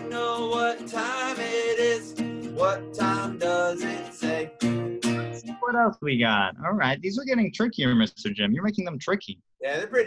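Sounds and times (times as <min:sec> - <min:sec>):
acoustic guitar strumming: 0:00.0 - 0:05.9.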